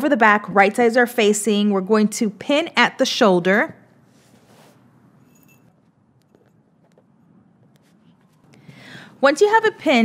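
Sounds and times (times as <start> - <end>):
fabric handling: 4.0 - 8.6.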